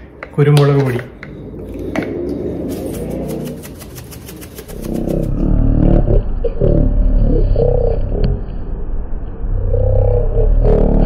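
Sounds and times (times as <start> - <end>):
low rumble with shifting pitch: 0.6 - 3.9, 4.7 - 11.0
spice bottle rattling: 2.6 - 5.3.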